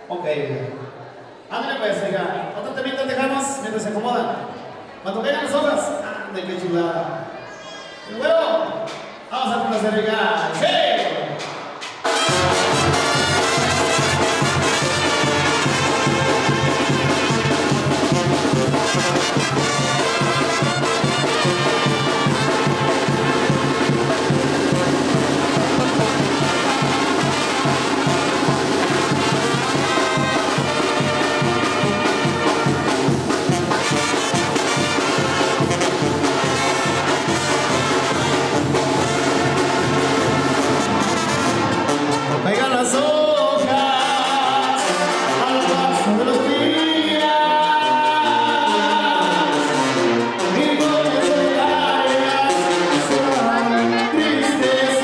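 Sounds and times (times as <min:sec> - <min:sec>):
brass band playing: 0:11.4 - 0:55.0.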